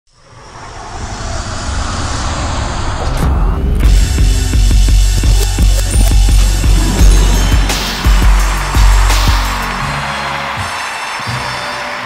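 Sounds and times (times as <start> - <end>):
rushing whoosh with low rumble: 0.1 - 4.9.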